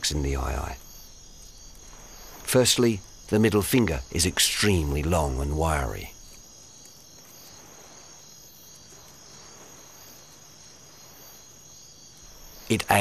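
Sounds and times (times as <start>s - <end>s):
night insects chirring: 0.0s - 13.0s.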